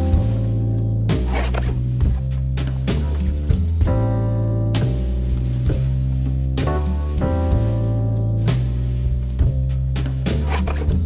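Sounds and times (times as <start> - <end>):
light beat: 0.0 - 11.0.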